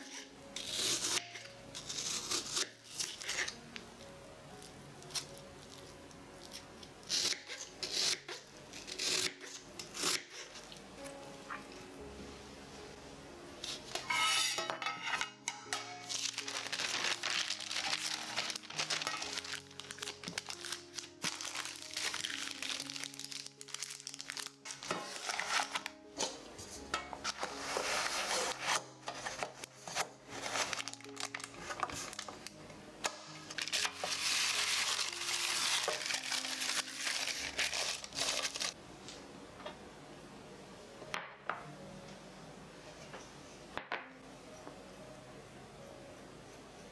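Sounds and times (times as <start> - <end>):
baking paper crinkling: 16.0 - 26.0, 27.4 - 32.6, 33.5 - 38.8.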